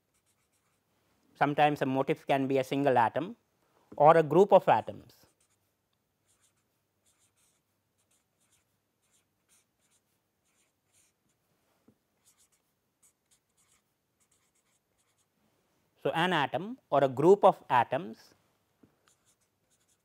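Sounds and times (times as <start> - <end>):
marker scratching on paper: 0.0 - 0.8, 5.2 - 11.4, 12.2 - 15.3, 19.1 - 20.0.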